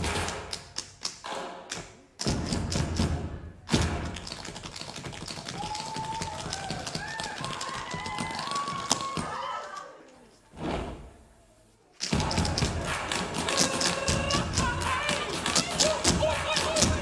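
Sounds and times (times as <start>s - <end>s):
tap shoes on stage floor: 0.0s - 9.4s, 12.1s - 17.0s.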